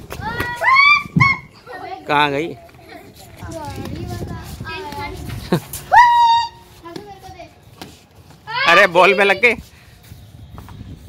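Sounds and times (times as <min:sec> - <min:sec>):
children talking and calling out: 0:00.0 - 0:09.6.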